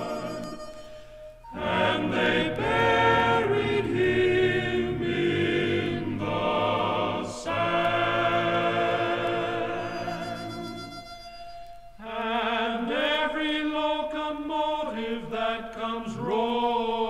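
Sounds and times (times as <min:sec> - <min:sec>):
choir singing held notes: 0:00.0 - 0:17.0.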